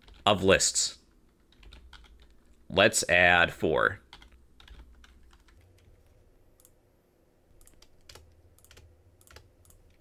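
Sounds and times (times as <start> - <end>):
faint keyboard typing: 0.0 - 0.4, 1.1 - 2.6, 4.0 - 6.8, 7.5 - 10.0.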